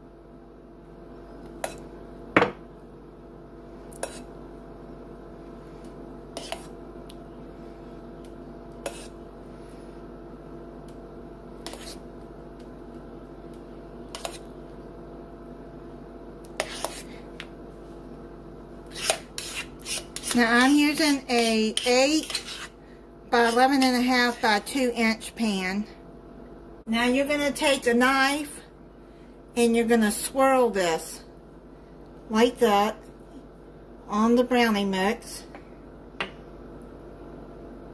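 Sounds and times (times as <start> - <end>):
steady low hum: 0.0 - 37.9.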